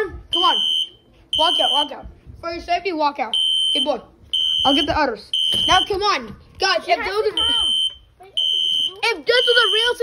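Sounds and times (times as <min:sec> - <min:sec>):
fire alarm beeping: 0:00.3 - 0:02.0, 0:03.3 - 0:06.0, 0:07.4 - 0:10.0.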